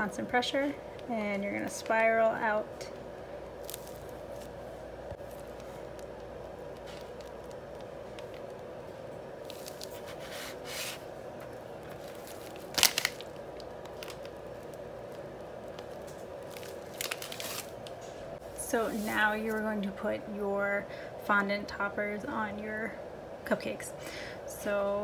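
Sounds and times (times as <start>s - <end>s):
steady background hum: 0.0s - 25.0s
plastic rustling: 3.6s - 19.7s.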